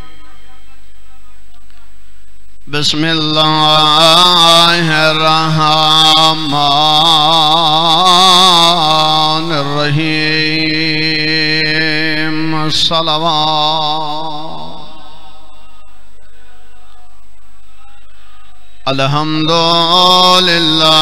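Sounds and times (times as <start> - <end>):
steady hum: 0.0 - 19.2
man chanting: 0.0 - 21.0.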